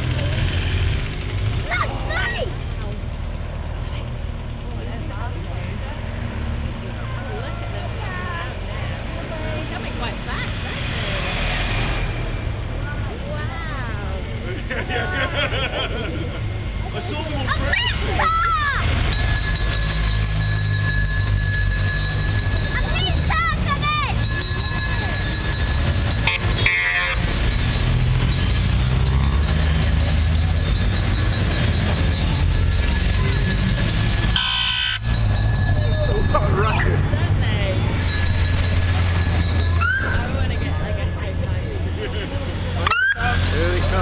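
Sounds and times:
motorcycle engines rumbling: 0:00.0 - 0:44.0
spectators calling out: 0:16.4 - 0:44.0.

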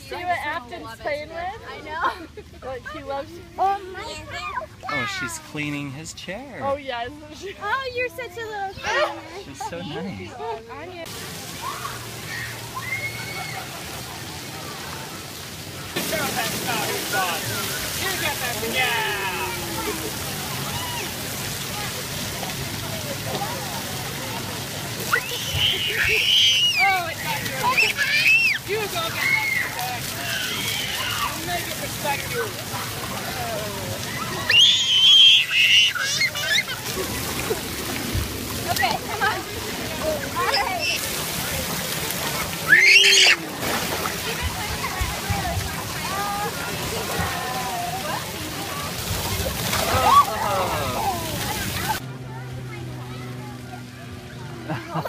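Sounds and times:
water jets splattering on concrete: 0:00.0 - 0:53.4
child squealing: 0:29.2 - 0:31.4, 0:34.3 - 0:36.8, 0:42.7 - 0:43.4.

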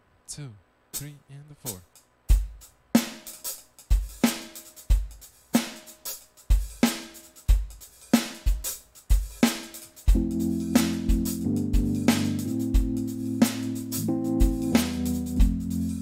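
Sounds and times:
electronic drum kit beat: 0:01.0 - 0:16.0.

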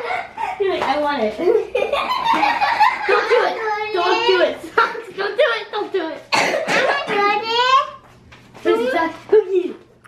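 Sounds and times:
person coughing: 0:06.3 - 0:07.2.

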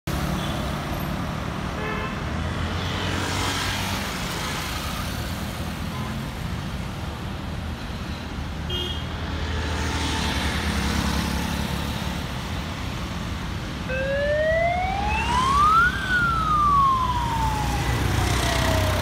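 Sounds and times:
vehicles passing: 0:00.1 - 0:19.0.

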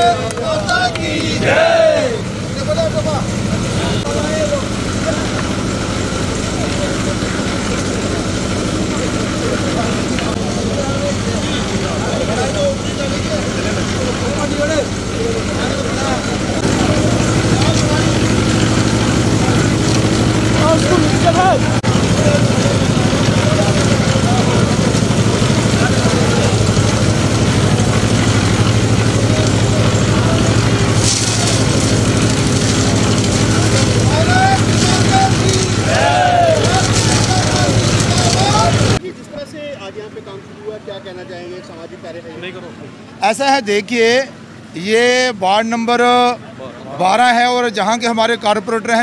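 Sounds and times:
crowd chatter: 0:00.0 - 0:44.7, 0:46.4 - 0:47.1
concrete mixer engine running: 0:00.0 - 0:49.0.

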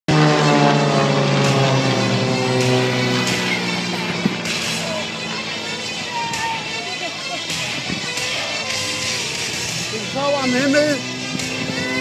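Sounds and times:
propeller plane flying past: 0:00.1 - 0:12.0.

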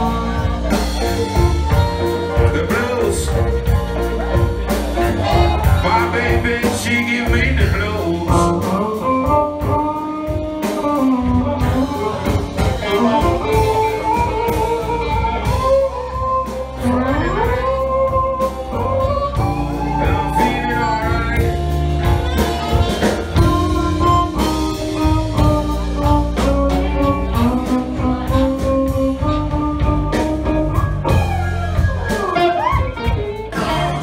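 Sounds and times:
live blues band playing: 0:00.0 - 0:34.0
sliding lead melody: 0:00.0 - 0:34.0.

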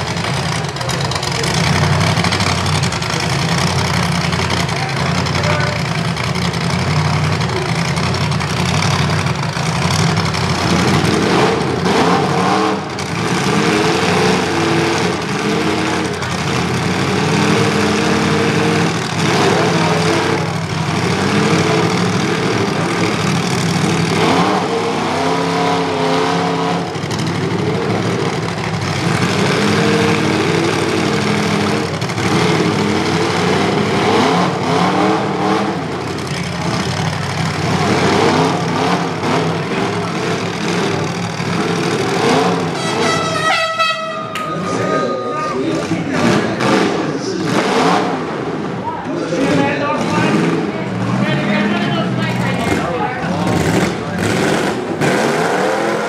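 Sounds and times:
vehicle engines revving hard: 0:00.0 - 0:56.0.

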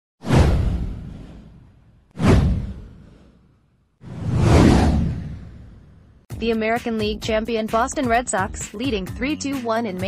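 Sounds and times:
whoosh with low rumble: 0:00.2 - 0:06.3.

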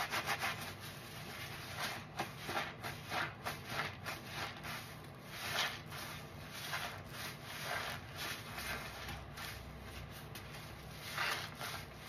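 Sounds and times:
soapy sponges squishing: 0:00.0 - 0:12.0.

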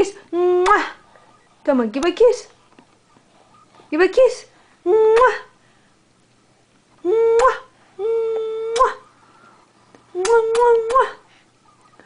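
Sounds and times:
hummed kissing sound: 0:07.0 - 0:09.2, 0:10.0 - 0:12.0.

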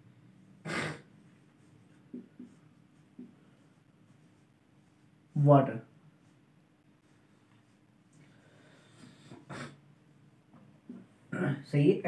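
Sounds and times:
marker pen on whiteboard: 0:00.0 - 0:11.3.

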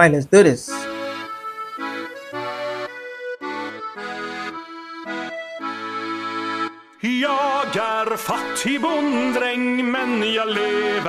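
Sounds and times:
accordion folk tune: 0:00.6 - 0:11.0.

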